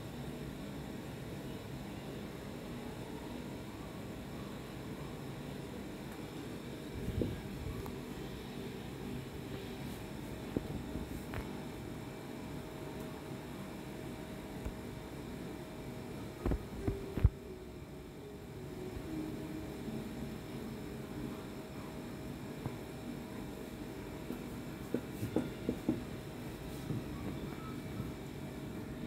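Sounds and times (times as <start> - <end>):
faint steady tone: 0.0 - 10.2, 26.4 - 29.0
room hum and hiss: 0.0 - 29.0.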